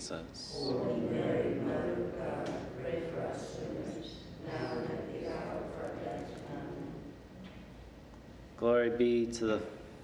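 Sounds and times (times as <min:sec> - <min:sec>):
person leading prayer: 0:00.0 - 0:07.0
voices reciting a prayer together: 0:00.0 - 0:07.4.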